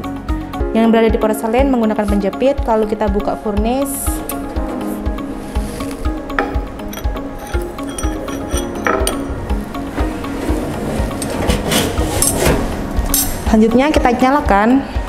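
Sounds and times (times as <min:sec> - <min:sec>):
background music with steady beat: 0:00.0 - 0:15.0
metal tongs scraping and clinking: 0:06.4 - 0:09.6.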